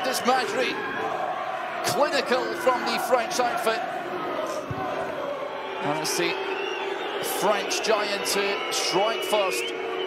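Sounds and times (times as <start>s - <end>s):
crowd murmur: 2.6s - 7.5s.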